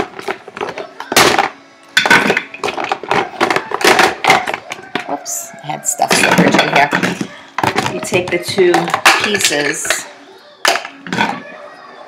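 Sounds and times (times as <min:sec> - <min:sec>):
hard plastic parts clattering: 0:00.0 - 0:05.2, 0:06.0 - 0:11.5.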